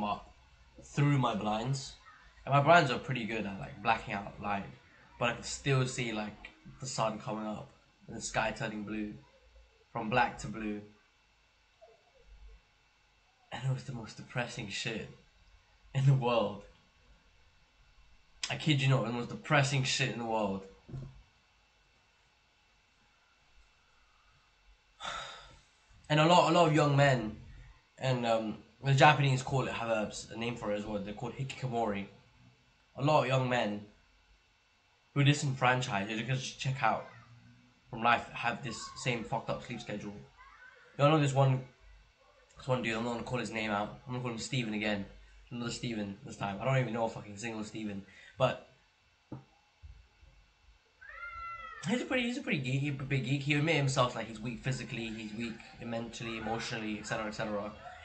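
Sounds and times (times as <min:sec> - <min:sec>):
man sighing: 0:25.0 - 0:25.6.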